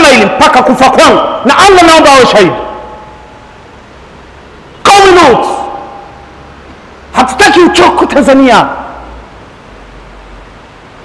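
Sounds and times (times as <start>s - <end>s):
man speaking over loudspeakers: 0.0s - 3.0s, 4.8s - 6.1s, 7.1s - 9.0s.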